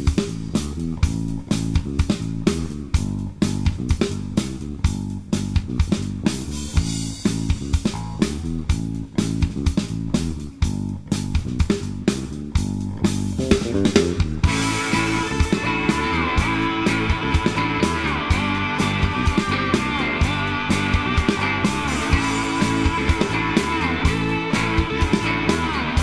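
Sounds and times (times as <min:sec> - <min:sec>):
drum kit beat: 0:00.0 - 0:26.0
electric bass line: 0:00.0 - 0:26.0
electric guitar: 0:12.9 - 0:26.0.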